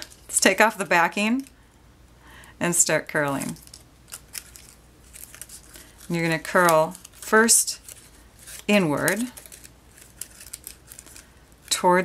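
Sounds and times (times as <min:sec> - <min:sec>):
paper crackling and rustling: 0:00.0 - 0:01.5, 0:03.3 - 0:12.0
sharp paper clicks: 0:03.5 - 0:11.8.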